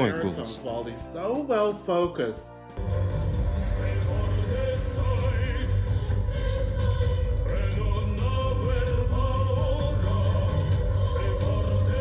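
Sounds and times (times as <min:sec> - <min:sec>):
man singing with vibrato: 0:03.5 - 0:12.0.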